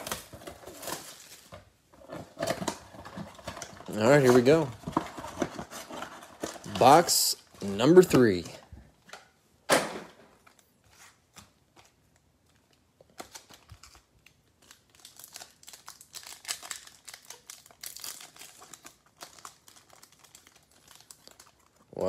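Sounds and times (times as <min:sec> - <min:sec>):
foil wrapper crinkling and tearing: 0:00.0 - 0:01.6, 0:13.1 - 0:22.0.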